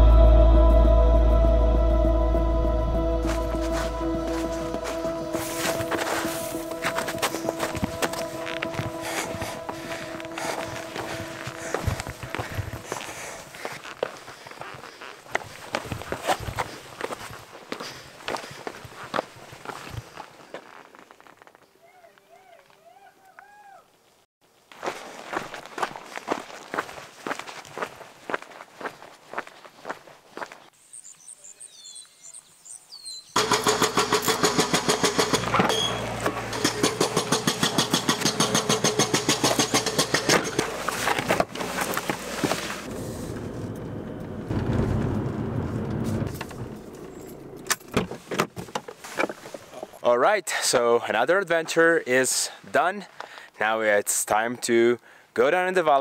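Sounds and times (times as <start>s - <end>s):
car driving: 0.0s - 13.2s, 33.4s - 48.5s
footsteps on rock: 3.2s - 21.7s, 24.7s - 30.7s
bird calls: 30.8s - 33.4s.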